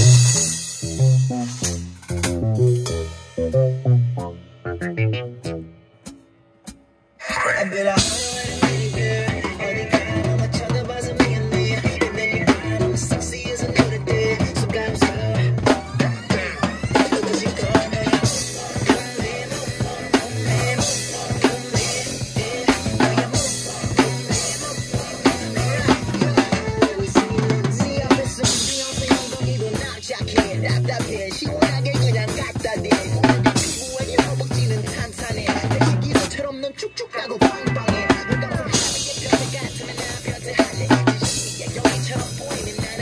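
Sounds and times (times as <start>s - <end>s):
backing track with bass: 0.0s - 43.0s
rock drum kit beat: 0.0s - 43.0s.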